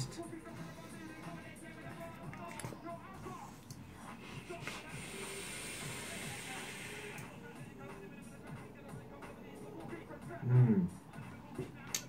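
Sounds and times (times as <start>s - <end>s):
background music: 0.0s - 12.0s
vape hissing: 4.8s - 7.4s.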